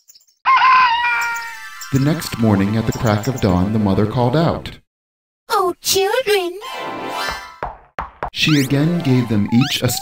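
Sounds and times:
rooster crowing: 0.5s - 1.6s.

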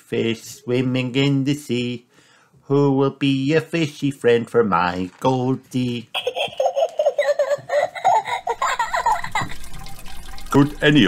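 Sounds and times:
person giggling: 6.1s - 9.7s.

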